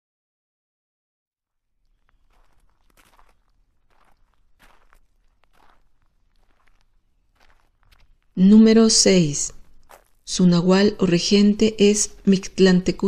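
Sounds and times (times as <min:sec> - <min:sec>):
soft irregular clicks and rustles: 0:01.8 - 0:08.4.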